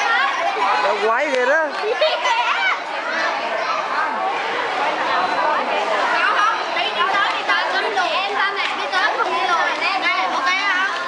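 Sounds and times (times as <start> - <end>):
overlapping group chatter: 0.0 - 11.0.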